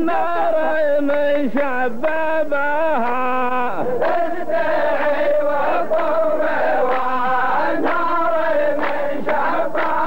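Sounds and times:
men chanting in unison: 0.0s - 10.0s.

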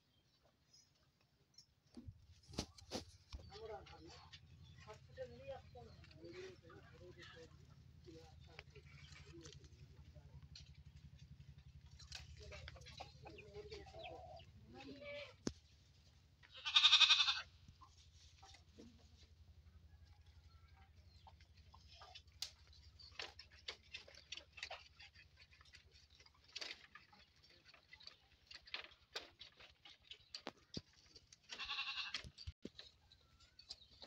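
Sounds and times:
goat bleating: 16.4s - 17.5s, 31.5s - 32.3s.

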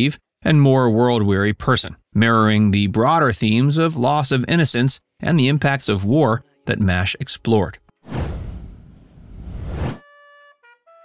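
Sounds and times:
whoosh transition effect: 8.1s - 10.0s.

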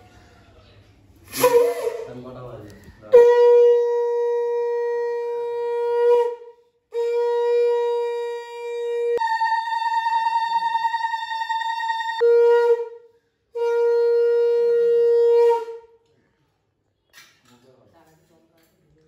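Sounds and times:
conch shell blasts: 1.3s - 2.4s, 3.0s - 16.0s.

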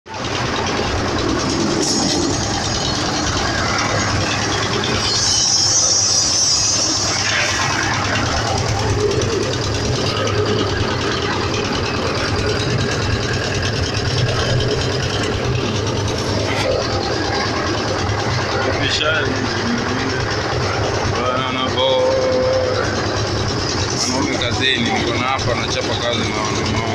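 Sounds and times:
construction site noise: 0.1s - 26.9s
engine humming: 0.1s - 26.9s
hissing rush: 0.4s - 21.2s.

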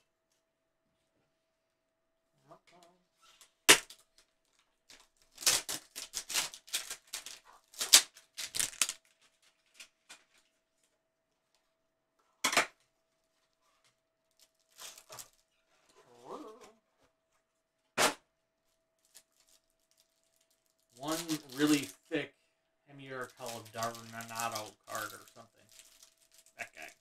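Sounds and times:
loud plastic snap: 3.7s - 4.0s.

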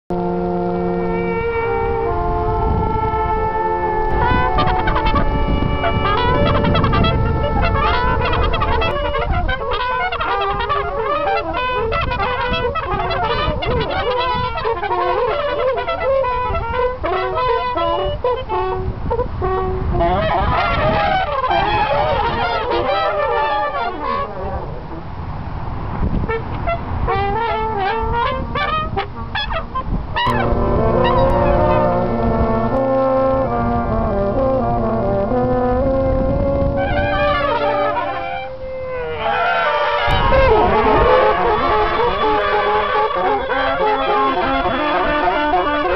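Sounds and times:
trumpet fluttering high runs: 0.1s - 25.1s, 26.2s - 33.9s, 35.8s - 45.9s
horns sustained chord: 0.1s - 25.3s, 26.2s - 45.9s
trumpets holding long notes: 0.1s - 45.9s.

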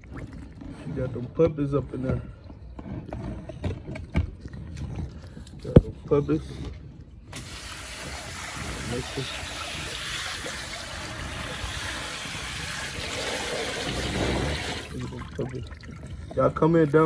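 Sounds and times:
hose water running into a tub: 7.3s - 17.0s.

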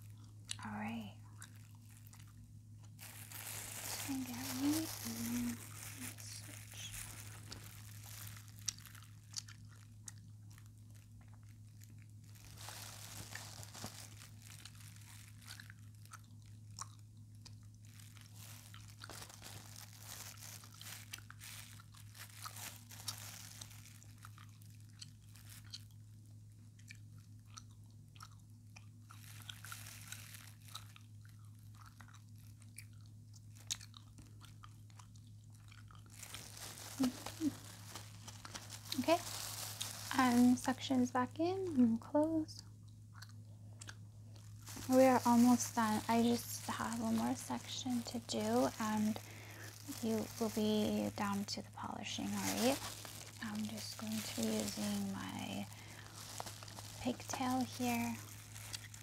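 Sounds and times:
low electrical hum: 0.0s - 59.0s
close-up crackling and clicks: 0.1s - 59.0s.

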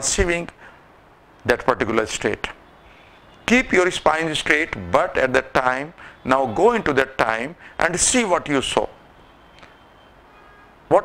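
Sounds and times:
man speaking: 0.0s - 0.6s, 1.4s - 2.6s, 3.5s - 9.0s
faint room hiss: 0.0s - 11.0s.

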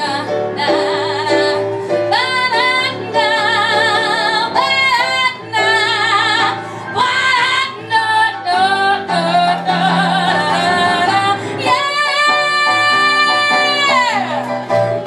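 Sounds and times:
woman singing with vibrato: 0.0s - 14.9s
piano accompaniment: 0.0s - 15.0s.

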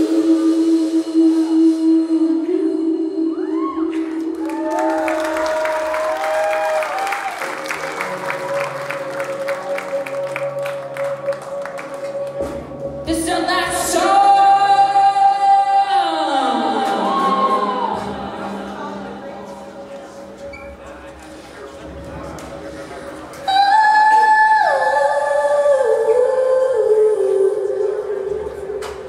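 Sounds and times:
woman singing: 0.0s - 6.1s, 13.0s - 19.7s, 23.4s - 29.0s.

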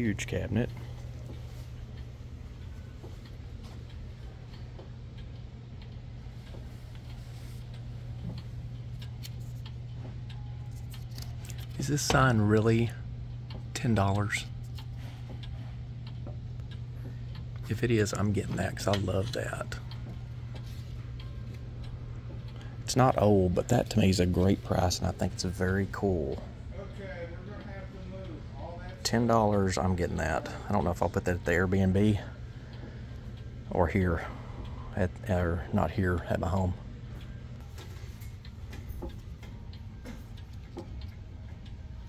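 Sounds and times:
mechanical clocks ticking: 0.0s - 42.0s
steady low hum: 0.0s - 42.0s.

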